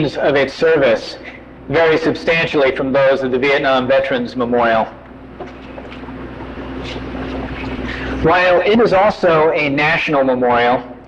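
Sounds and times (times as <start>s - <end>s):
low electrical hum: 0.0s - 11.0s
rumbling background noise: 0.0s - 11.0s.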